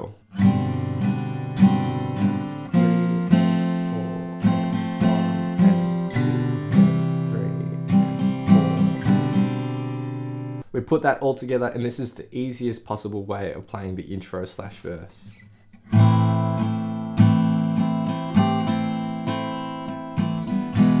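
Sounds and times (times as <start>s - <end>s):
acoustic guitar strumming: 0.2s - 10.6s, 15.3s - 21.0s.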